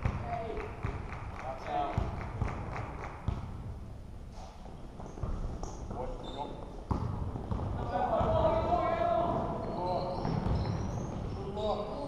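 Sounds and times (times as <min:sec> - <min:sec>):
basketball bouncing on gym floor: 0:00.0 - 0:01.1, 0:01.8 - 0:03.8, 0:06.8 - 0:11.6.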